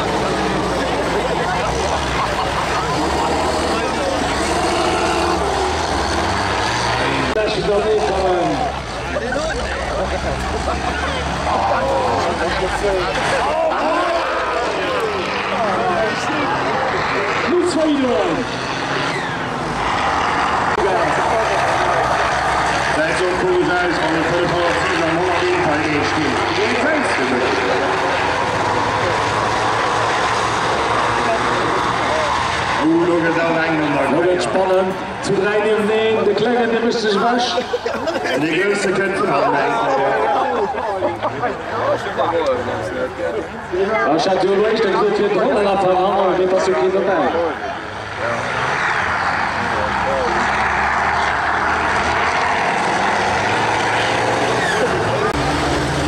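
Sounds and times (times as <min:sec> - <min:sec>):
diesel engines droning: 0:00.0 - 0:56.0
announcer talking over loudspeaker: 0:06.6 - 0:08.9, 0:15.4 - 0:18.6, 0:20.7 - 0:28.2, 0:31.1 - 0:52.3.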